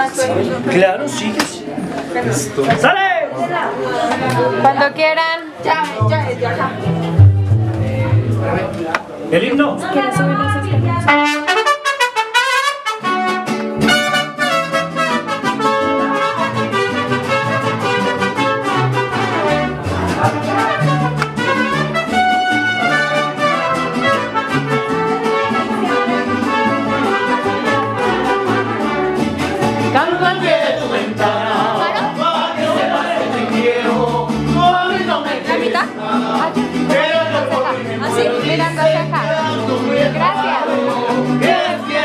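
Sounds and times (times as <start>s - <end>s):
mariachi band playing: 0.0s - 42.0s
pulsing bass line: 6.0s - 8.7s
trumpets playing melody: 10.6s - 29.4s.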